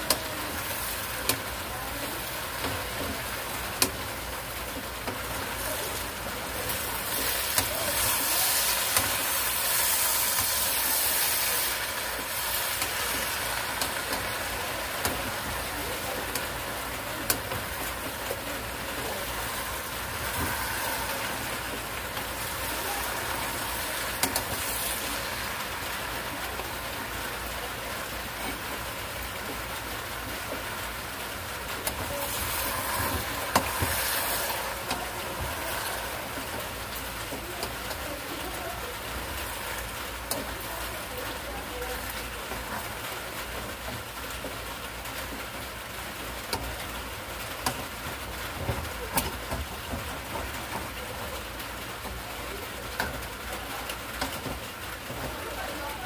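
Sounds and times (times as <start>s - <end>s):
food sizzling in a pan: 0.0s - 56.0s.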